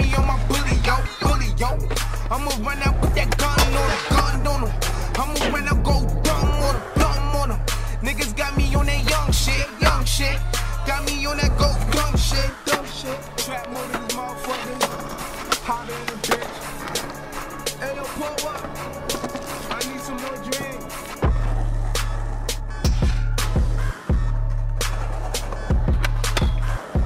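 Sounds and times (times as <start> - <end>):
background music: 0.0 - 27.0
hip-hop beat with deep bass: 0.0 - 27.0
skateboard wheels rolling: 0.0 - 27.0
skateboard clacking on concrete: 0.1 - 4.5, 11.4 - 22.4.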